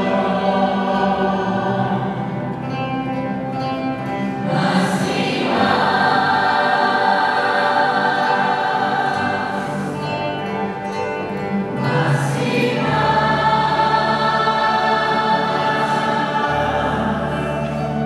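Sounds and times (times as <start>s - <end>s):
choir singing a hymn: 0.0s - 3.2s, 3.8s - 18.0s.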